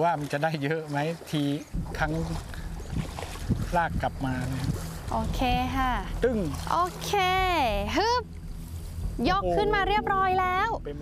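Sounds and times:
water sloshing and swishing: 0.0 - 11.0
low rumble: 1.7 - 11.0.

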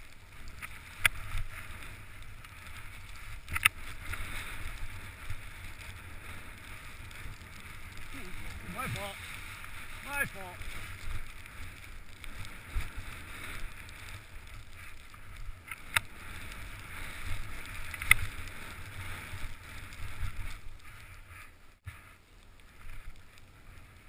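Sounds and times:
wind rumble on microphone: 0.0 - 24.0
skis hissing on snow: 0.5 - 15.0.

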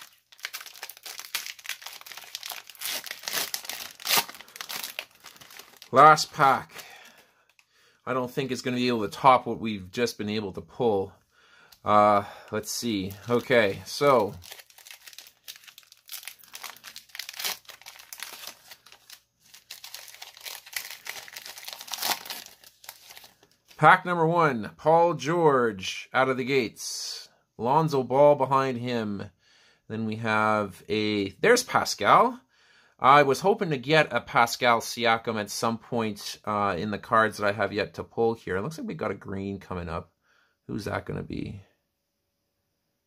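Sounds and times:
foil wrapper crinkling and tearing: 0.0 - 7.6, 12.8 - 23.8.

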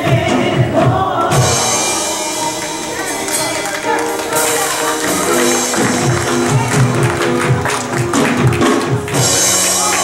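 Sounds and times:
percussion hits: 0.0 - 10.0
rhythmic bass line: 0.0 - 10.0.

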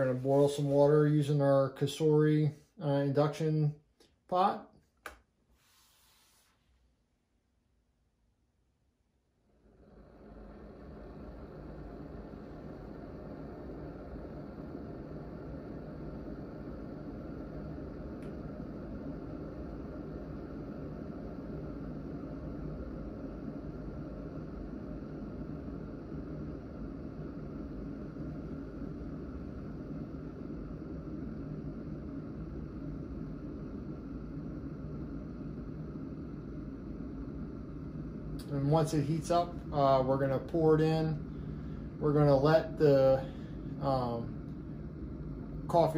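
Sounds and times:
electric kettle heating water: 9.3 - 45.9.

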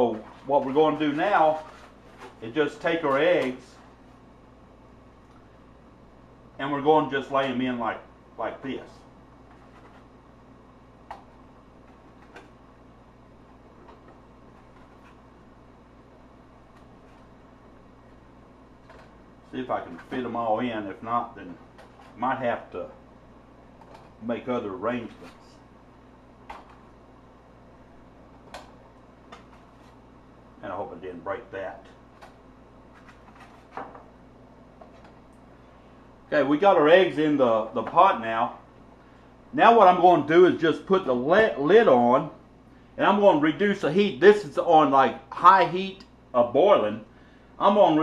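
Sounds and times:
faint steady hum: 0.0 - 48.0.

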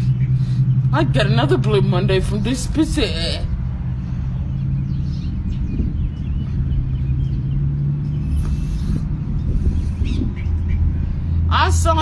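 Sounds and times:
constant low hum: 0.0 - 12.0
steady low rumble: 0.0 - 12.0.

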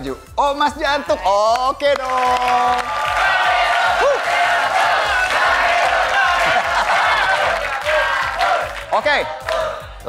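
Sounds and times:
upbeat game show music: 0.0 - 10.0
studio crowd cheering and clapping: 0.8 - 10.0.

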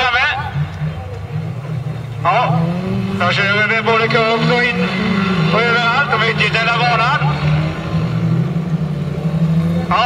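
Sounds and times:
announcer speaking over loudspeaker: 0.0 - 1.0, 2.2 - 7.7, 9.6 - 10.0
race car engines droning: 0.0 - 10.0.

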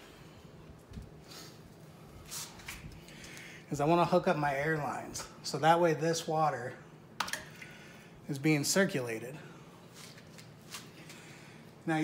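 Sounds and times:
low steady hum: 0.0 - 12.0
faint rustling and handling: 9.8 - 11.3.

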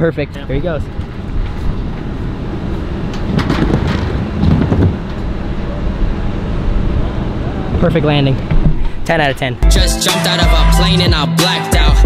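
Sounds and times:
scooter wheels rolling on wood: 2.8 - 5.3.

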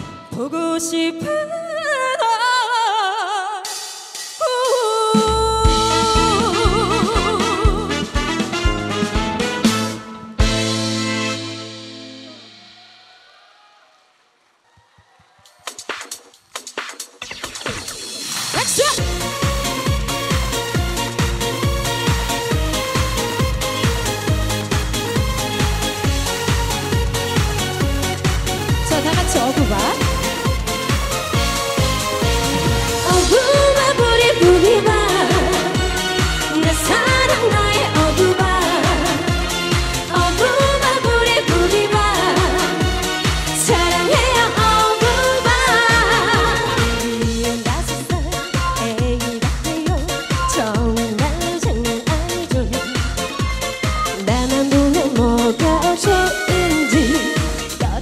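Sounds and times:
woman singing into a microphone: 0.0 - 3.7, 4.4 - 8.0, 33.0 - 58.0
electronic dance music: 15.4 - 58.0
low quick beat: 29.2 - 33.7.

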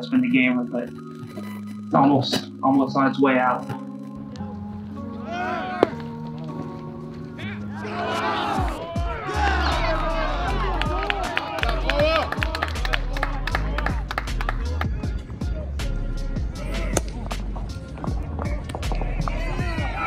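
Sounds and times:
music with vocals: 0.0 - 20.0
deep bass and ticking beat: 8.7 - 20.0.

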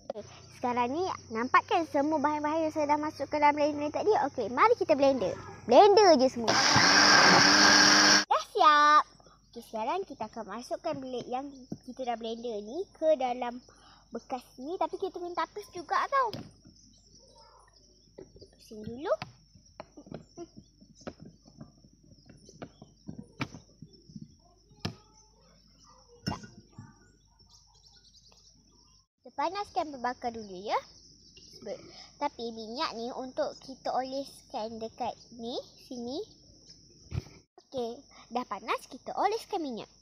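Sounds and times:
child speaking: 0.0 - 6.7, 8.3 - 16.4, 17.2 - 17.8, 18.6 - 19.3, 24.4 - 27.1, 29.2 - 30.9, 31.5 - 36.3, 37.6 - 40.0
high drone of insects: 0.1 - 8.3
electric blender running: 6.5 - 8.3.

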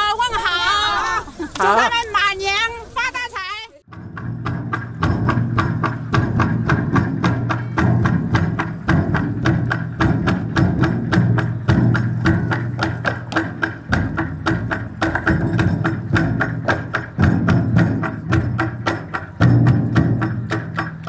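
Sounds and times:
large drum beaten with sticks: 3.9 - 21.0.

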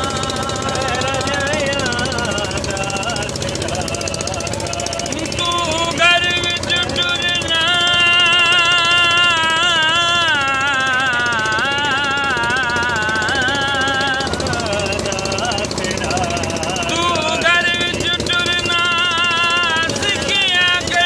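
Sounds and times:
man singing unaccompanied: 0.0 - 21.0.

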